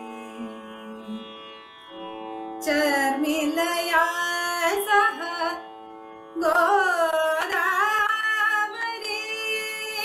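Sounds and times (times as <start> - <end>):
woman singing: 0.0 - 1.2, 2.6 - 5.6, 6.4 - 10.0.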